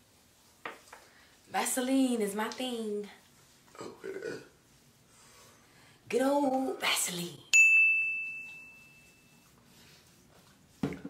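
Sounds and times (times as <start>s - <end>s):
bell-like ding: 7.5s - 9.4s.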